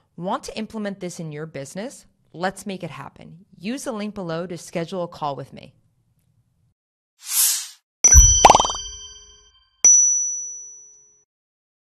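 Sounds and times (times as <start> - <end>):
short whoosh: 7.2 - 7.8
bright chime ringing: 8.1 - 10.9.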